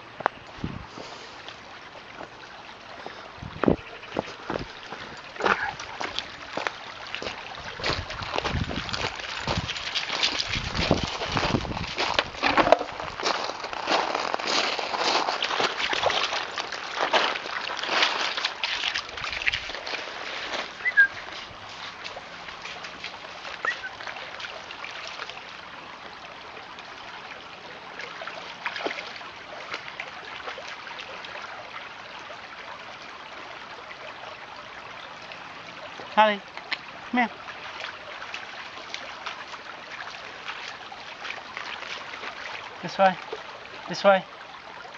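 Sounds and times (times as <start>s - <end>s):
stream trickling: 0.0s - 44.9s
dog splashing through water: 4.6s - 25.7s, 27.8s - 31.6s, 36.6s - 43.9s.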